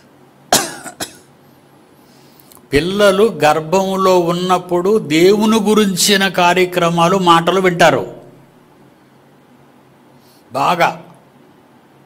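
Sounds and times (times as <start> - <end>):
man coughing: 0.5 - 1.3.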